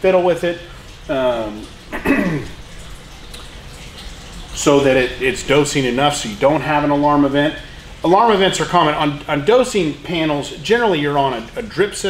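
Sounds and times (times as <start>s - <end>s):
man clearing throat: 1.9s - 2.6s.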